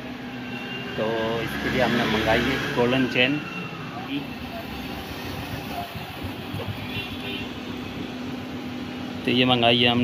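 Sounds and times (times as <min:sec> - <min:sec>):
workshop background noise: 0:00.0 - 0:10.0.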